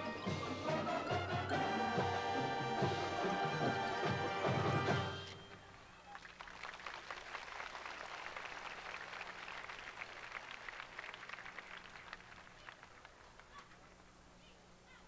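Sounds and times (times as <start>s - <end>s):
audience applauding: 6.0s - 14.0s.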